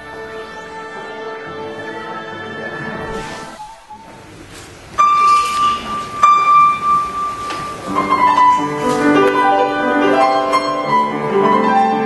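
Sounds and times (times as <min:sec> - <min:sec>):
high piano note ringing: 0:05.0 - 0:11.7.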